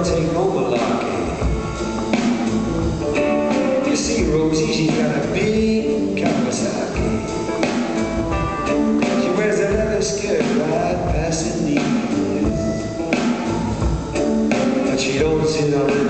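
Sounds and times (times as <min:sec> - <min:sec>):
rock and roll band playing: 0:00.0 - 0:16.0
person singing: 0:03.1 - 0:07.8, 0:08.6 - 0:13.2, 0:14.2 - 0:16.0.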